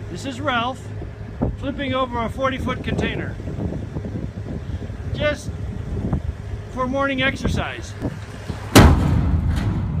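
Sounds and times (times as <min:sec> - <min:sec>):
low rumble: 0:07.9 - 0:10.0
metal container slamming ground: 0:08.4 - 0:10.0.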